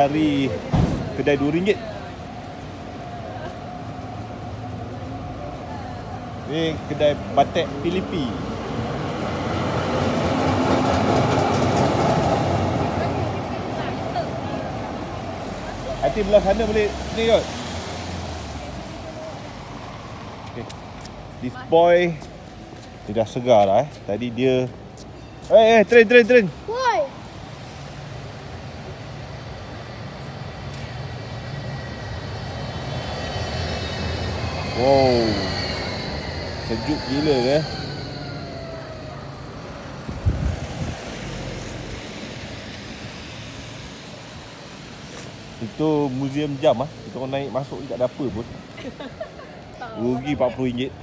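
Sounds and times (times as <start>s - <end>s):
tram passing: 0.0s - 51.0s
wheels clicking on rails: 9.4s - 14.4s.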